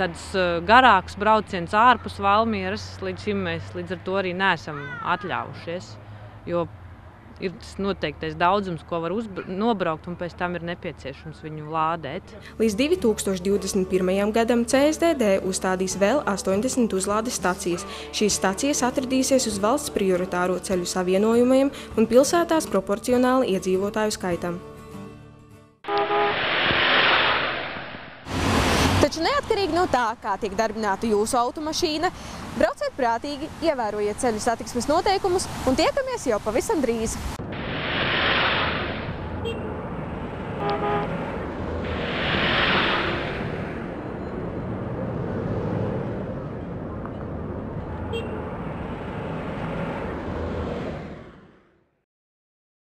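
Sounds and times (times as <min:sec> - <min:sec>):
road traffic rumble: 0:00.0 - 0:25.0, 0:25.9 - 0:51.8
short pitched tone: 0:25.9 - 0:27.5
vehicle whoosh passing by: 0:25.9 - 0:29.2, 0:37.2 - 0:51.7.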